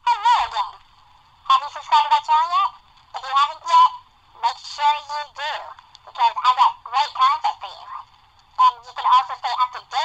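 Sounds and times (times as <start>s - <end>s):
person speaking over telephone: 0.0s - 0.8s, 1.5s - 10.0s.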